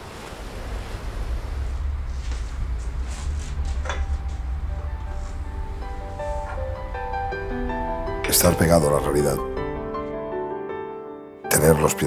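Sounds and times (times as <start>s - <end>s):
deep low rumble: 0.0s - 9.9s
sea waves washing: 0.0s - 9.9s.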